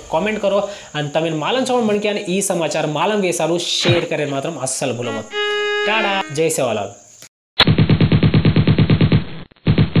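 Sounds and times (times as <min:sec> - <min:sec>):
machine-gun fire: 0:07.7 - 0:10.0.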